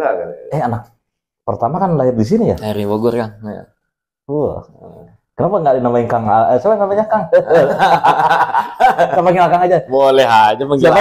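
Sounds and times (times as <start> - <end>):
men talking: 0.0 - 11.0
men laughing: 7.2 - 9.9.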